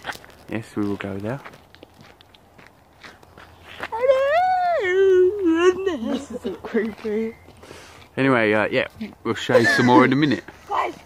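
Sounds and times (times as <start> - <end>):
faint footsteps: 0.0 - 11.0
person making ghostly wail: 3.9 - 6.0.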